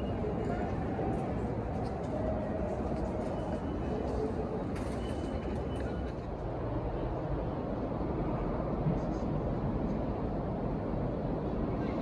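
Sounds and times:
low rumble in station hall: 0.0s - 12.0s.

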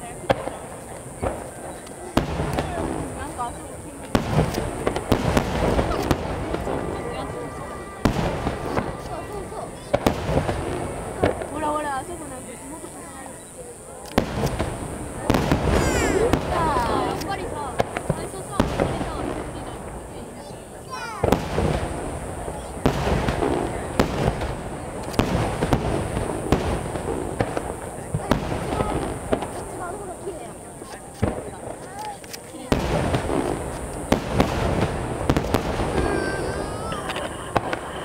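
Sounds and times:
firework shells booming: 0.0s - 38.0s
rumbling echo: 0.2s - 12.3s.

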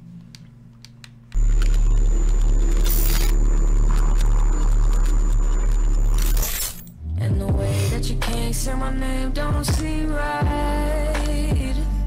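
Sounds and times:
deep bass drone: 1.3s - 12.0s.

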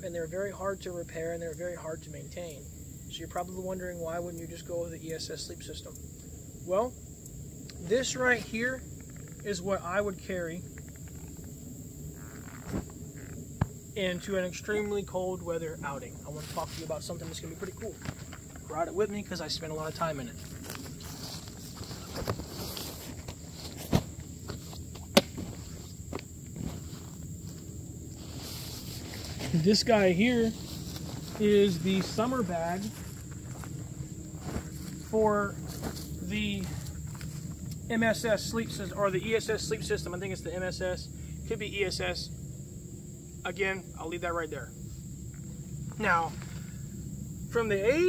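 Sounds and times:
high-pitched insect drone: 0.0s - 48.0s
footsteps in grass: 15.9s - 37.8s
blankets rustling on canvas: 19.9s - 37.6s.

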